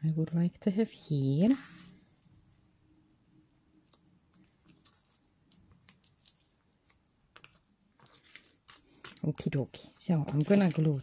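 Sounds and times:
paper rustling on a tabletop: 4.3 - 11.0.

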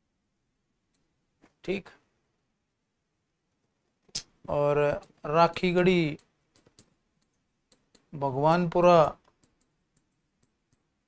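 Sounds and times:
person speaking: 1.5 - 2.2, 4.0 - 7.0, 7.7 - 10.6.

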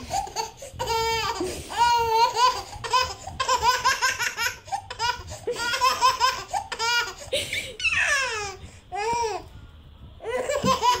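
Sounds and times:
baby laughing hard: 0.0 - 9.2, 10.3 - 11.0.

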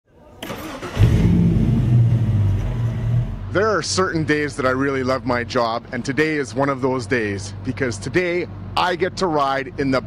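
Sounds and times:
car engine starting and rumbling: 0.4 - 6.8.

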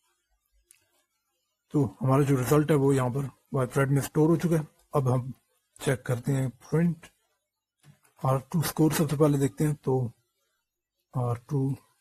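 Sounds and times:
man speaking: 1.7 - 7.2, 8.2 - 10.2, 11.1 - 12.0.

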